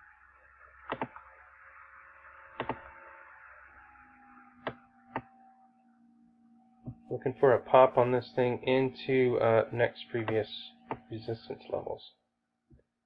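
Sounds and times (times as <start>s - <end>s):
computer mouse clicks: 0.9s - 1.2s, 2.6s - 2.8s.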